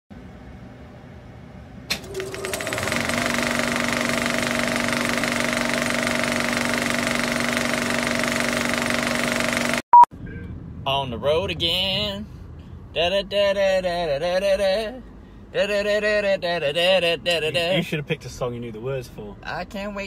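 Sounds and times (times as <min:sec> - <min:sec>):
mechanical buzzing rattle: 0:01.9 - 0:09.8.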